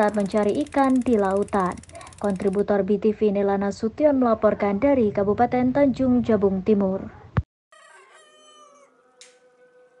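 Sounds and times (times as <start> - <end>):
rooster crowing: 7.8 - 10.0.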